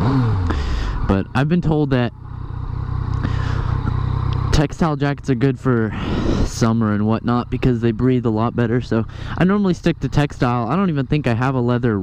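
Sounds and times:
motorcycle engine rumble: 0:00.0 - 0:12.0.

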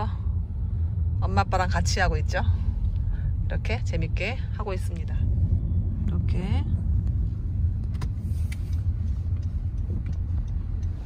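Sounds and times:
car driving slowly: 0:00.0 - 0:11.0.

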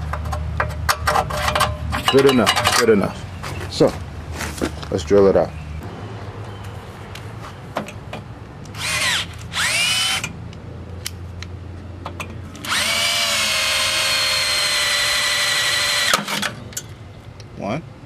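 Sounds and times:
cordless drill drilling rivets: 0:08.7 - 0:10.4, 0:12.5 - 0:16.6.

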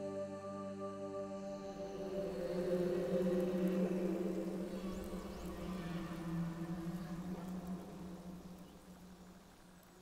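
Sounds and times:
ambient drone music: 0:00.0 - 0:09.6.

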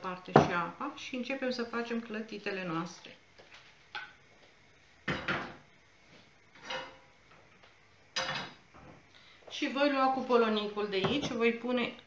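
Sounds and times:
frying pan and utensils knocking: 0:05.0 - 0:05.6, 0:06.6 - 0:07.1, 0:08.2 - 0:08.6, 0:11.0 - 0:11.4.

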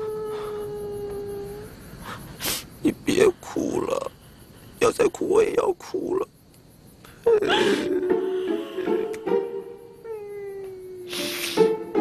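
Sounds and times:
person sobbing and wailing: 0:00.0 - 0:01.8, 0:07.2 - 0:11.7
loud gasping breath: 0:07.1 - 0:08.9.

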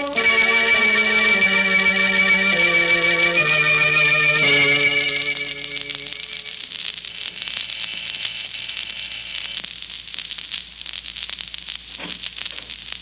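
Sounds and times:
faint music notes: 0:00.0 - 0:06.6
record crackle and hiss: 0:00.0 - 0:13.0.

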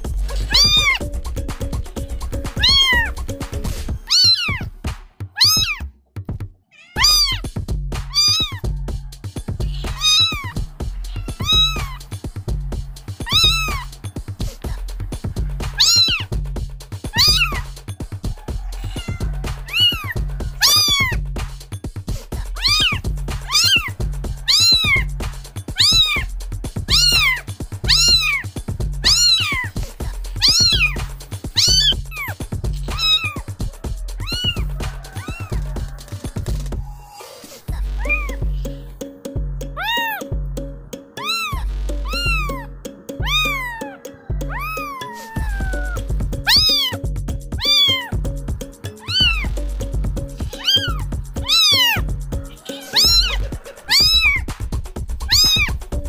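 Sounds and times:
music with low bass beat: 0:00.0 - 0:37.0, 0:37.7 - 0:56.0
kitten meowing: 0:00.3 - 0:01.0, 0:02.4 - 0:03.2, 0:04.0 - 0:04.7, 0:05.3 - 0:05.9, 0:06.7 - 0:07.5, 0:08.1 - 0:08.7, 0:09.6 - 0:12.0, 0:13.2 - 0:13.9, 0:15.7 - 0:16.3, 0:17.1 - 0:17.6, 0:18.6 - 0:21.2, 0:22.6 - 0:25.1, 0:25.8 - 0:26.3, 0:26.9 - 0:29.7, 0:30.4 - 0:33.6, 0:34.2 - 0:35.7, 0:38.0 - 0:38.6, 0:39.8 - 0:40.3, 0:41.2 - 0:47.0, 0:47.6 - 0:48.2, 0:49.0 - 0:49.5, 0:50.4 - 0:54.5, 0:55.2 - 0:55.8.

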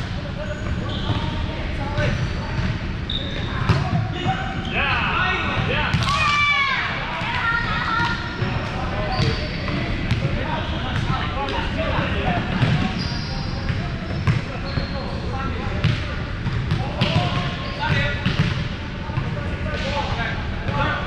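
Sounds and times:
players talking and calling: 0:00.0 - 0:21.0.

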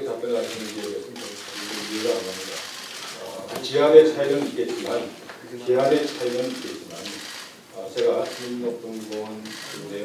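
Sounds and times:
steady hiss: 0:00.0 - 0:09.0
man speaking into a microphone: 0:00.0 - 0:10.0.

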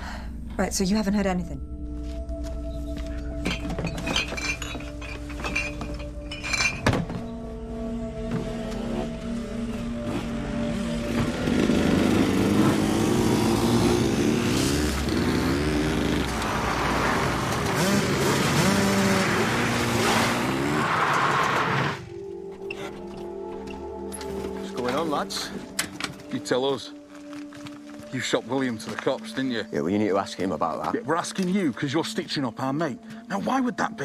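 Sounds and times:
background music: 0:00.0 - 0:34.0
dirt bike engines revving: 0:10.2 - 0:22.1.

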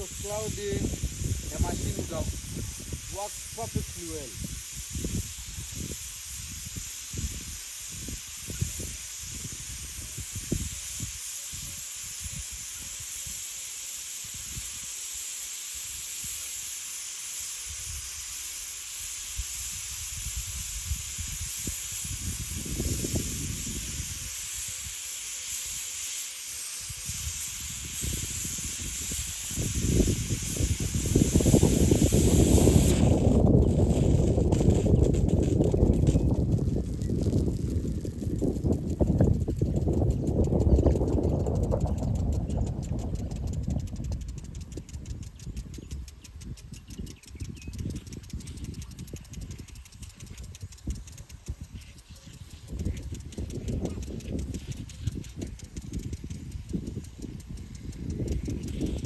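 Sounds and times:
wind buffeting microphone: 0:00.0 - 0:13.5, 0:19.1 - 0:59.0
sprinklers spraying water: 0:00.0 - 0:59.0.

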